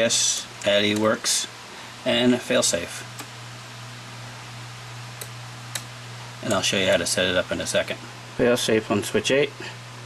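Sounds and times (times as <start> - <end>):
low even hum: 0.0 - 10.0
steady background hiss: 0.0 - 10.0.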